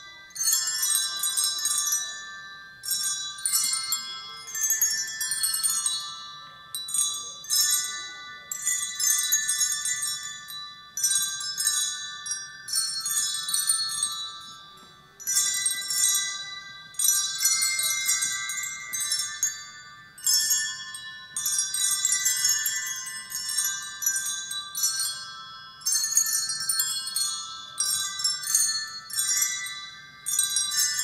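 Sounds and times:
handbells ringing a tune: 0:00.0 - 0:31.0.

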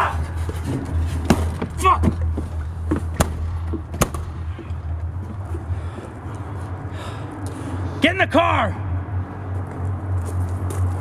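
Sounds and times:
steady low hum: 0:00.0 - 0:11.0
sharp knocks: 0:02.9 - 0:04.6.

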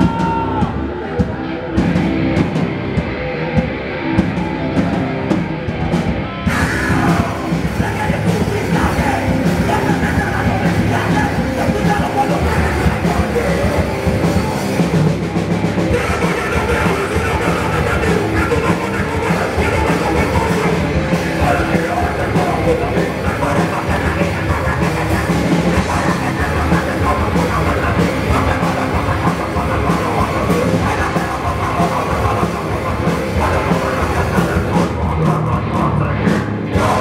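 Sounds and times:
drum kit: 0:00.0 - 0:37.0
electric guitar: 0:00.0 - 0:37.0
punk band playing live: 0:00.0 - 0:37.0.

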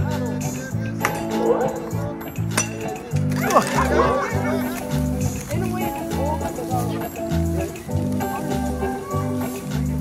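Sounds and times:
party music with steady beat: 0:00.0 - 0:03.2, 0:04.0 - 0:10.0
people's voices: 0:00.0 - 0:10.0.

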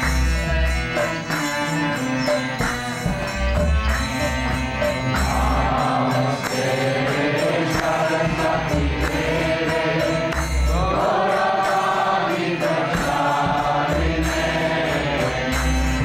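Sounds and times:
percussion beat: 0:00.0 - 0:16.0
devotional chanting: 0:03.5 - 0:16.0.

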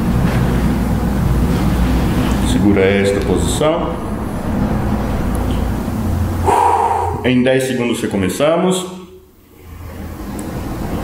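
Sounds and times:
man breathing heavily: 0:06.4 - 0:07.3.

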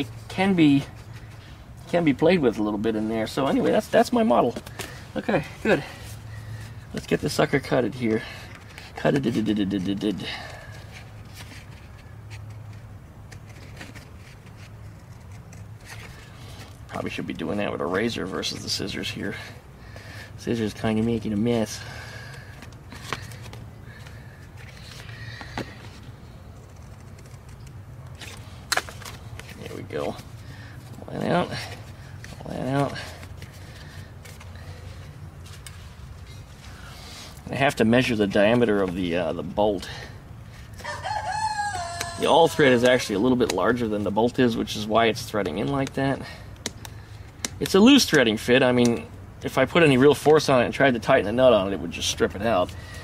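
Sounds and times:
low steady hum: 0:00.0 - 0:41.0.

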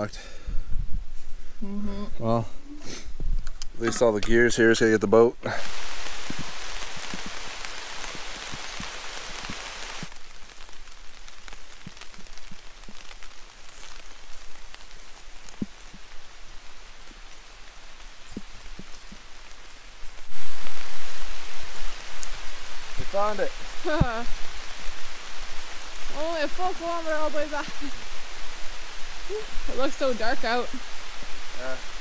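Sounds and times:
rain pattering on leaves: 0:03.8 - 0:32.0
drops striking leaves: 0:05.6 - 0:32.0.

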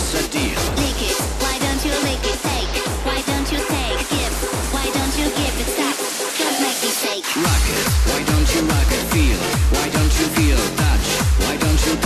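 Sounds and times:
kick drum: 0:00.0 - 0:05.7, 0:07.5 - 0:12.0.

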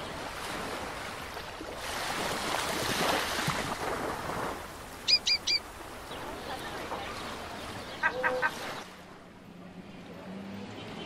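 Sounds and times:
bird calling: 0:05.0 - 0:06.3, 0:07.1 - 0:08.9.

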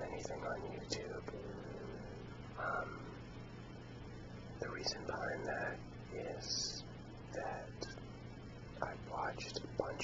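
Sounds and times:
man whispering: 0:00.0 - 0:03.2, 0:04.6 - 0:08.0, 0:08.8 - 0:10.0
steady low hum: 0:00.0 - 0:10.0.

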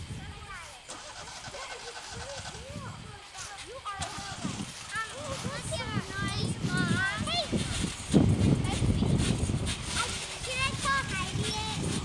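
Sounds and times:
children calling and chattering: 0:00.0 - 0:12.0
low uneven rumble: 0:00.0 - 0:12.0.

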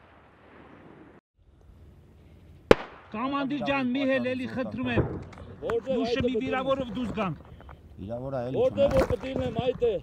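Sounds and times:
gunshot: 0:02.7 - 0:03.2.

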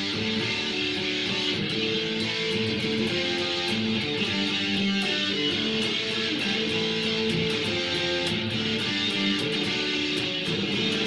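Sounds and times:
guitar music: 0:00.0 - 0:11.0.

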